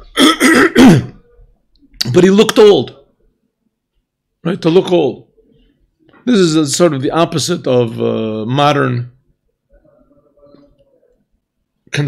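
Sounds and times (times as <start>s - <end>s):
man clearing his throat: 0.0s - 1.3s.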